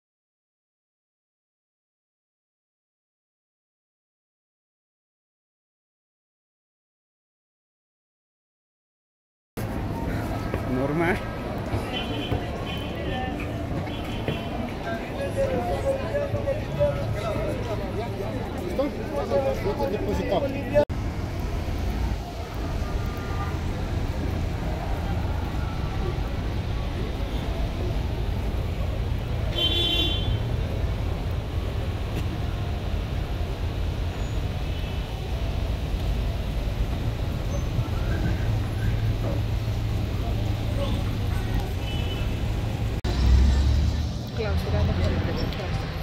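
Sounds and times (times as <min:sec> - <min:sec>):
traffic engine rumble: 0:09.6 - 0:46.0
vehicle horn toot: 0:29.5 - 0:30.4.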